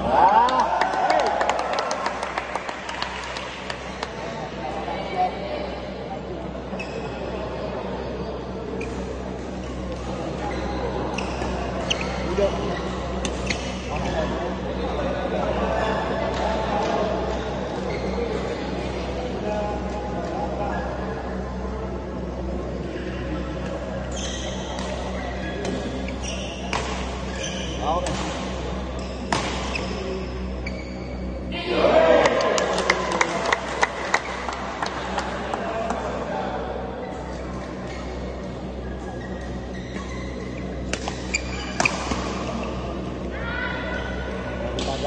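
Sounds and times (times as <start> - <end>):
shoes squeaking on court floor: 6.7 - 7.4, 8.8 - 14.3, 15.8 - 18.8, 24.0 - 31.5, 37.0 - 43.2
racket hitting shuttlecock: 29.3 - 29.8, 40.9 - 42.4.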